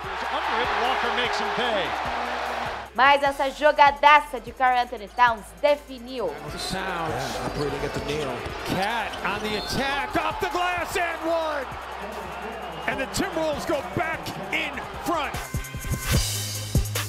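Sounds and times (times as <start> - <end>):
arena noise: 6.3 - 15.6
sneakers squeaking: 6.5 - 11.0.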